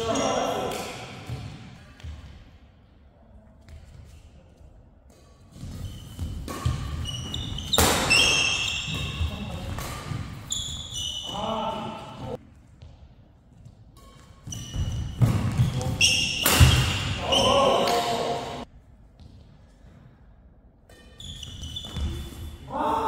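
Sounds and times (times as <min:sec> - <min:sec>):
racket striking shuttlecock: 0:05.2 - 0:10.3, 0:16.4 - 0:17.2
shoes squeaking on court: 0:05.6 - 0:11.5, 0:14.0 - 0:17.4, 0:21.0 - 0:22.5
players shouting: 0:17.1 - 0:18.6.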